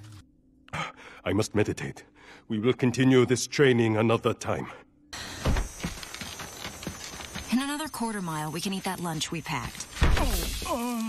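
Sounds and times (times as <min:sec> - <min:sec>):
woman speaking: 0:07.5 - 0:10.7.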